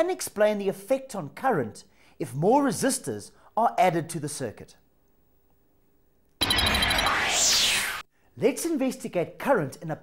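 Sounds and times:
hissing transition sound effect: 6.8 - 8.0.

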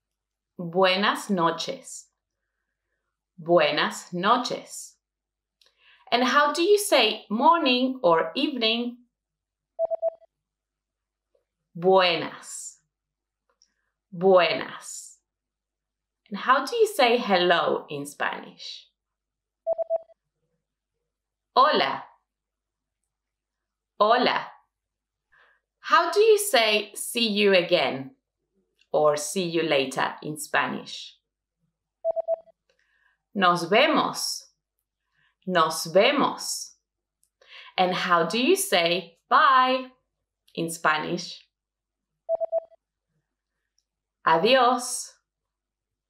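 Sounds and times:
short electronic beeps: 9.8 - 10.3, 19.7 - 20.1, 42.3 - 42.8.

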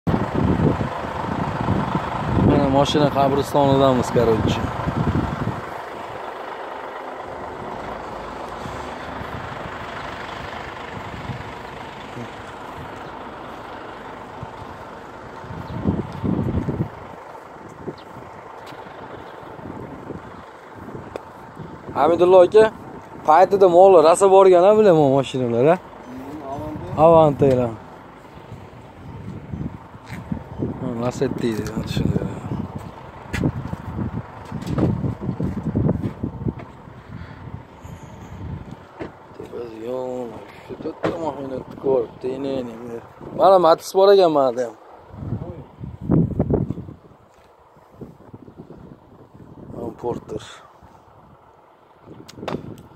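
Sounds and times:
wind buffeting microphone: 0.1 - 6.3, 7.5 - 43.7, 45.0 - 52.9
vehicle engine noise: 0.1 - 52.9.

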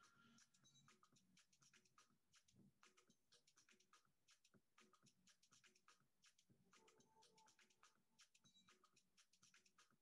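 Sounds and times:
faint irregular clicks: 0.0 - 10.0.

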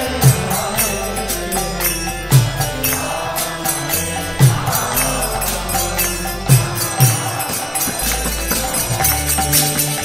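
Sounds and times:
deep drum beat: 0.0 - 10.0
jingling hand percussion: 0.0 - 10.0
person chanting: 0.0 - 10.0.

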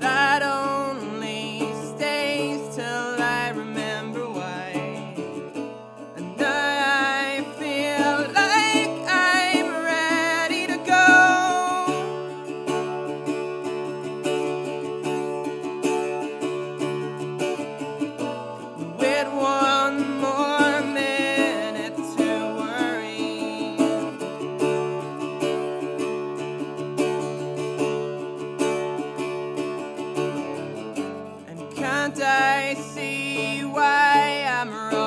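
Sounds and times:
man singing: 0.0 - 12.5, 18.8 - 24.7, 31.4 - 35.0
acoustic guitar strumming: 0.0 - 35.0.

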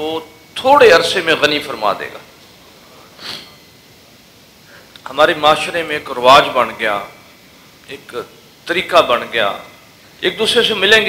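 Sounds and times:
man sniffing: 2.9 - 3.6.

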